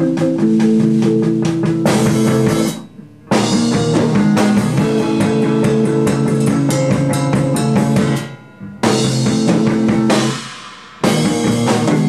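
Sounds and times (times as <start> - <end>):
electric bass and drum kit playing: 0.0 - 12.0.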